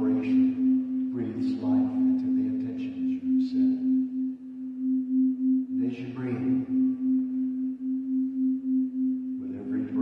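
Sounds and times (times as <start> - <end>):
crystal singing bowl tone: 0.0 - 10.0.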